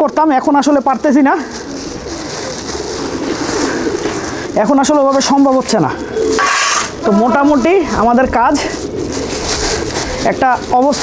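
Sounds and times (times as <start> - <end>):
pigeons cooing: 0.0 - 11.0
man talking: 7.0 - 8.8.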